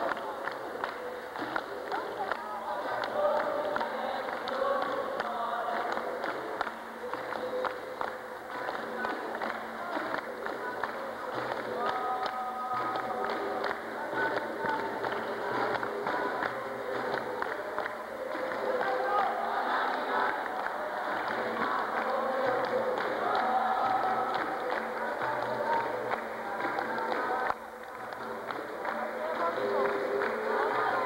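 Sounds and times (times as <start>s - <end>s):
group call-and-response singing: 0.0s - 31.0s
handclaps: 0.0s - 31.0s
percussion: 0.0s - 31.0s.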